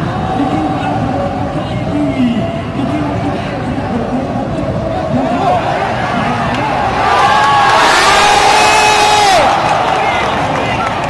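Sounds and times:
stadium crowd cheering: 4.9s - 11.0s.

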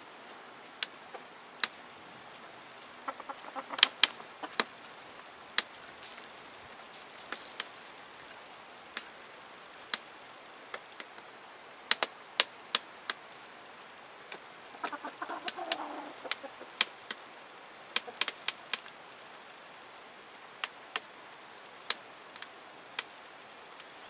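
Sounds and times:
hen clucking softly: 3.0s - 4.7s, 14.7s - 16.8s
beaks tapping on wooden board: 14.3s - 17.2s.

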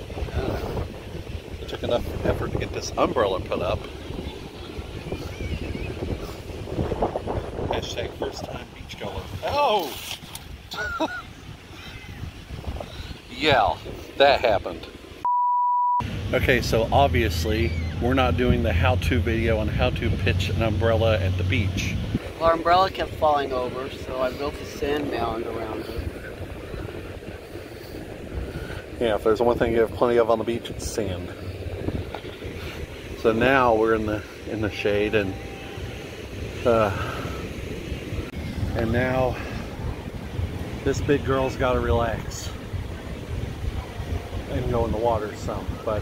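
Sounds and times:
wind buffeting microphone: 0.0s - 15.2s, 16.0s - 46.0s.

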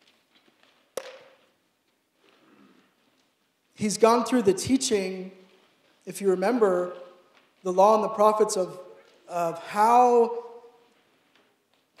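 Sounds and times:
plastic bottle ticks: 0.6s - 1.5s.

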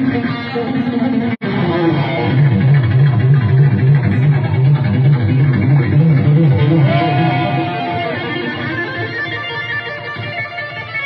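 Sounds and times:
electric guitar riff: 0.0s - 11.0s.

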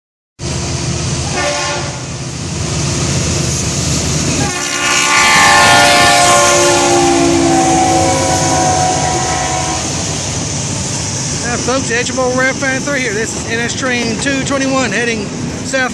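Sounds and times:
low rumble of passing train: 0.4s - 15.9s
train air horn blasts: 1.3s - 2.1s, 4.4s - 10.3s.

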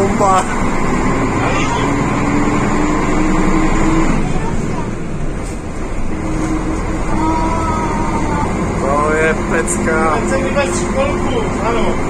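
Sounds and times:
bus diesel engine under load: 0.0s - 12.0s.

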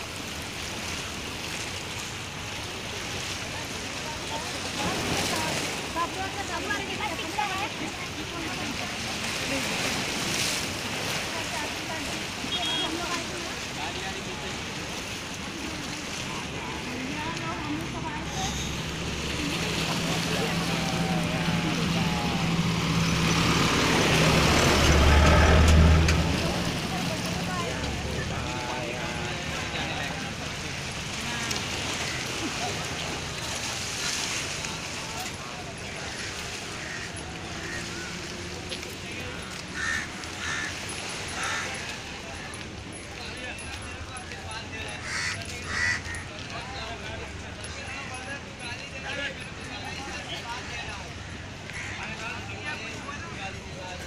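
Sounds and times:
people's voices: 0.0s - 54.0s
vehicle engine passing: 16.9s - 35.1s
crow cawing: 36.0s - 38.3s, 39.7s - 41.9s, 45.0s - 46.3s, 51.2s - 52.2s.

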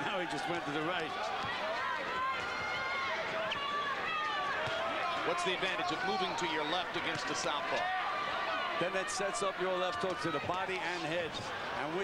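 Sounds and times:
crowd din: 0.0s - 12.0s.

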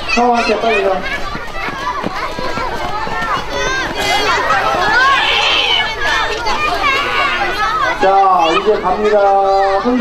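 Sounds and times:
children chattering and calling out: 0.0s - 10.0s.

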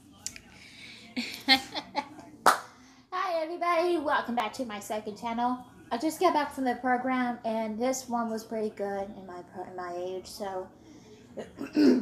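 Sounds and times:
sharp hand claps: 2.4s - 2.7s.

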